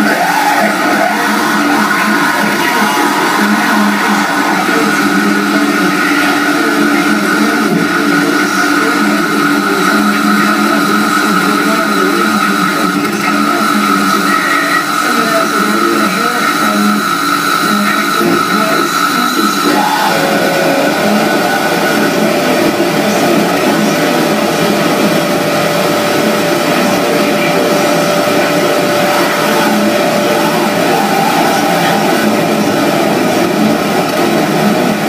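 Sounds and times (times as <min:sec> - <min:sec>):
harsh electronic noise music: 0:00.0 - 0:35.0
steady electronic tones: 0:00.0 - 0:35.0.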